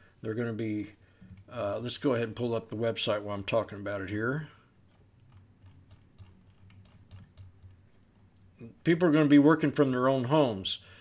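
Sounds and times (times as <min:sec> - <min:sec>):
low steady hum: 0:00.0 - 0:11.0
computer keyboard typing: 0:04.9 - 0:08.1.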